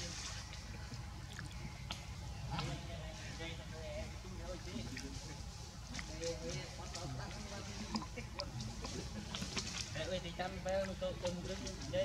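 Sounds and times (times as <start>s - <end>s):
people talking in background: 0.0s - 12.0s
steady low rumble: 0.0s - 12.0s.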